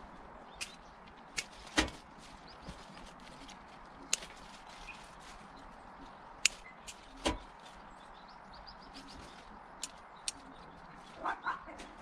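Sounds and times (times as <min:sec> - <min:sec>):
pruning shears snipping: 0:00.6 - 0:02.0, 0:04.0 - 0:05.0, 0:06.4 - 0:07.6, 0:09.8 - 0:10.7.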